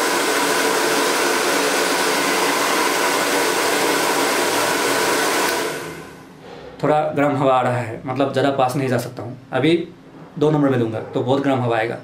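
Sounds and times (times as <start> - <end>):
hair dryer running: 0.0 - 6.3.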